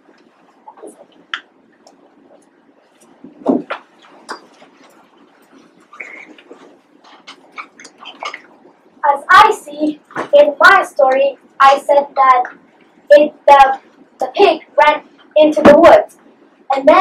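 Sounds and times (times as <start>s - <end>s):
faint murmuring: 0.0s - 17.0s
small sounds in room: 0.0s - 17.0s
child speaking loudly: 9.0s - 12.5s, 16.7s - 17.0s.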